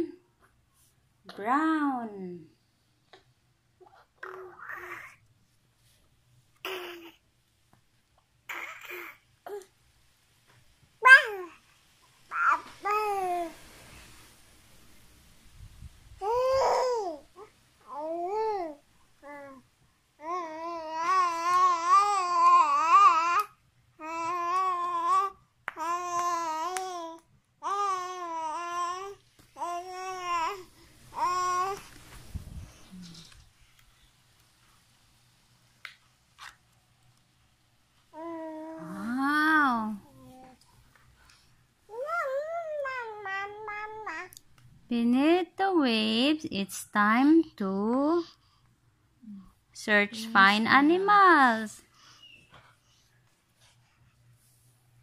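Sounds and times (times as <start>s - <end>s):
baby babbling: 3.8s - 5.2s, 6.6s - 7.2s, 8.5s - 9.7s, 11.0s - 11.6s, 12.3s - 13.6s, 16.2s - 19.6s, 20.2s - 31.9s, 38.2s - 39.2s, 40.0s - 40.6s, 41.9s - 44.3s
baby vocalizing high-pitched: 8.5s - 9.6s, 11.0s - 11.6s.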